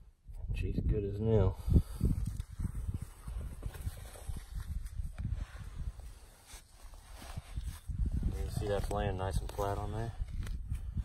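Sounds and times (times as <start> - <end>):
soil scraping: 3.0 - 11.0.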